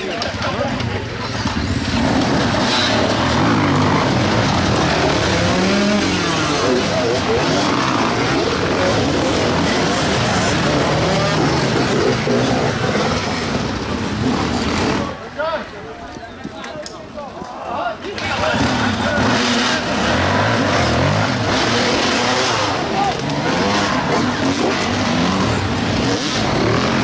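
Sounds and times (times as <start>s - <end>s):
dirt bike engines revving: 0.0s - 27.0s
people's voices: 0.0s - 27.0s.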